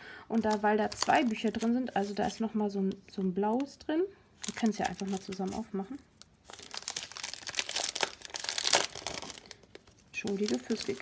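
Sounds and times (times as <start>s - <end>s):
plastic bag crinkling: 0.3s - 2.5s, 4.4s - 11.0s.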